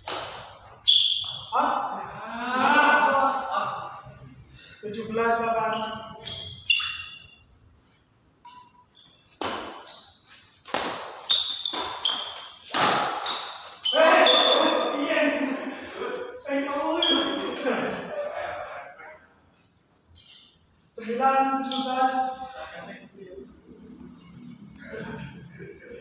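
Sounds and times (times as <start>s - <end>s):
rackets hitting shuttlecock: 0.0s - 1.4s, 8.4s - 13.8s
players calling out: 0.9s - 4.2s, 13.3s - 19.3s.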